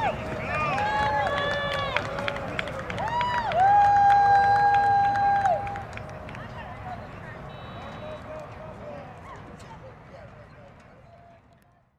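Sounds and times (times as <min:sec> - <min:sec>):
group of people talking: 0:05.7 - 0:11.9.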